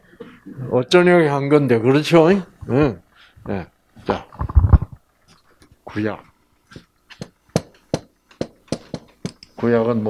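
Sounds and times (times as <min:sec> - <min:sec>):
marker tapping on whiteboard: 0:07.1 - 0:09.5.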